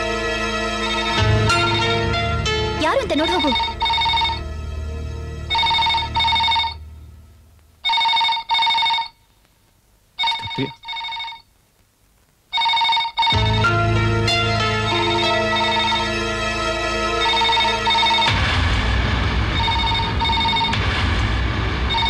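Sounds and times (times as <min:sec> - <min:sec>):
background music: 0:00.0 - 0:07.6, 0:13.3 - 0:22.0
telephone ringing: 0:00.8 - 0:02.4, 0:03.2 - 0:04.5, 0:05.4 - 0:06.9, 0:07.8 - 0:09.2, 0:10.2 - 0:11.5, 0:12.5 - 0:13.8, 0:14.4 - 0:16.2, 0:17.2 - 0:18.4, 0:19.5 - 0:20.8.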